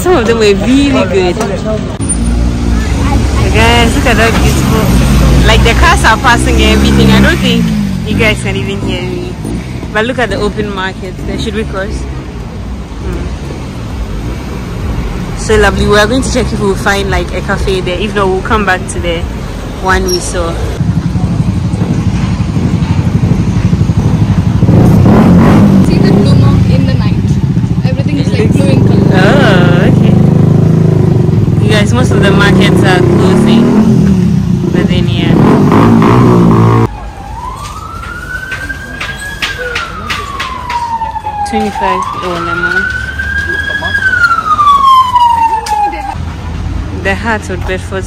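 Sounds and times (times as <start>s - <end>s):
traffic rumble: 0.0s - 48.0s
vehicle passing: 0.0s - 48.0s
siren wailing: 36.1s - 46.2s.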